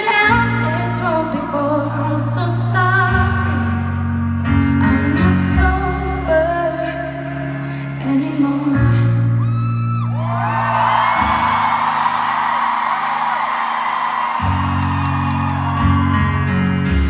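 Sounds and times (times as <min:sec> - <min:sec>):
piano chords: 0:00.0 - 0:17.0
arena crowd cheering: 0:09.6 - 0:16.8.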